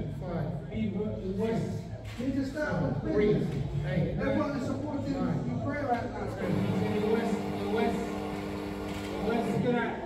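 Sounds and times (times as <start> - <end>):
voices in a large room: 0.0 - 10.0.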